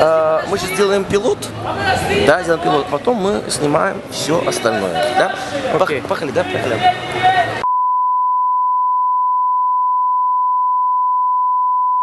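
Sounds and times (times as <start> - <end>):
steady sine-wave test tone: 7.6 - 12.0.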